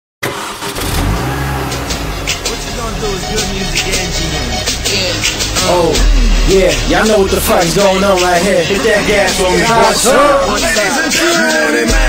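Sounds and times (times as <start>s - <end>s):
motorcycle engine running: 1.0s - 9.6s.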